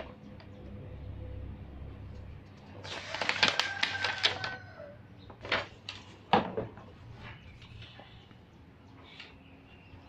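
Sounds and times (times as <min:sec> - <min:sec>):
paper rustling: 0:02.8 - 0:04.6.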